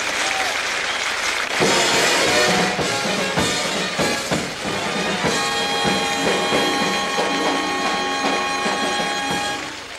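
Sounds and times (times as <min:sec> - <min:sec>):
drum beats: 0:01.4 - 0:09.9
saxophones holding notes: 0:05.0 - 0:09.9.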